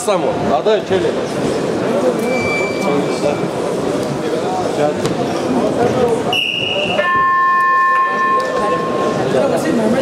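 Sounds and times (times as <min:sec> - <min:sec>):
arena crowd noise: 0:00.0 - 0:10.0
whistle blast: 0:06.3 - 0:09.2
electronic buzzer tone: 0:07.0 - 0:09.1.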